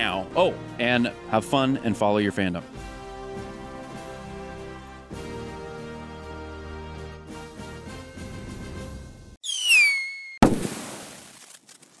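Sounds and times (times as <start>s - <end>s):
whistle falling in pitch: 9.4s - 10.4s.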